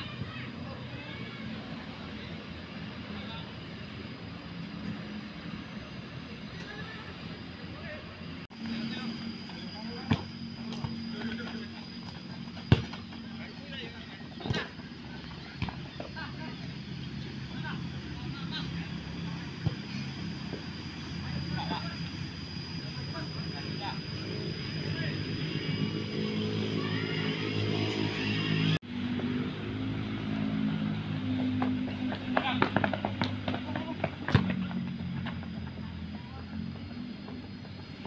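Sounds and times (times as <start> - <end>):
steady low hum: 0.0 - 38.0
football being kicked: 12.7 - 13.0.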